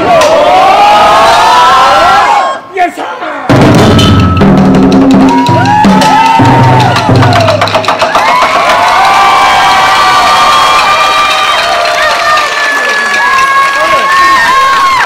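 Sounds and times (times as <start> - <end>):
audience cheering and shouting: 0.0 - 15.0
taiko drums struck hard: 3.5 - 8.9.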